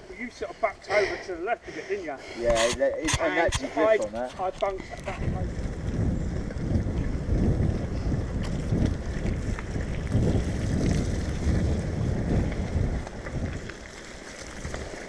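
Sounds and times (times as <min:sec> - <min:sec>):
wind buffeting microphone: 0:00.0 - 0:15.0
bike tyres rumbling on track: 0:04.1 - 0:15.0.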